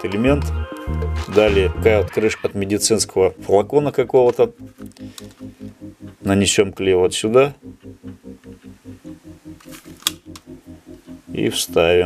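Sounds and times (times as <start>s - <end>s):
low pulsing: 0.2s - 12.0s.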